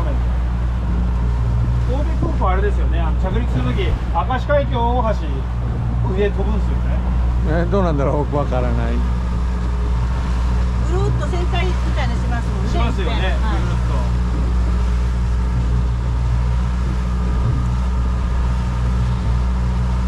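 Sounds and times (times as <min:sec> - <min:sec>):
outboard motor droning: 0:00.0 - 0:20.0
wind and water rushing: 0:00.0 - 0:20.0.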